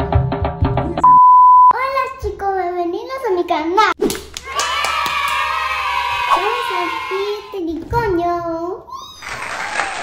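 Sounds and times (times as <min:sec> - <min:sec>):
loud electronic beep: 0:01.0 - 0:01.8.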